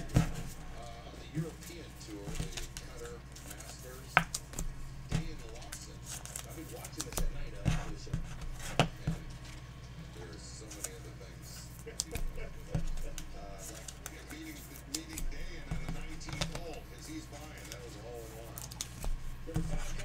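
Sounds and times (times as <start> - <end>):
card packs clicking and snapping: 0.0 - 8.1, 11.8 - 20.0.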